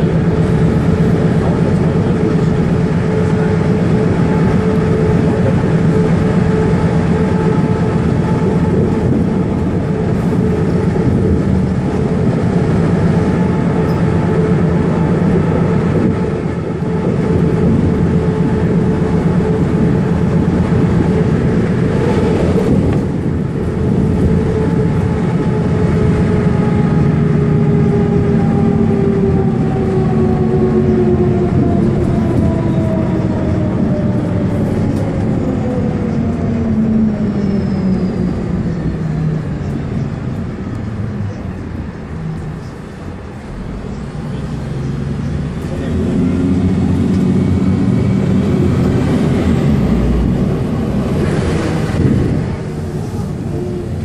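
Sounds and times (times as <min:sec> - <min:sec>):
bus drivetrain whine: 0:00.0 - 0:54.0
road and tyre noise: 0:00.0 - 0:54.0.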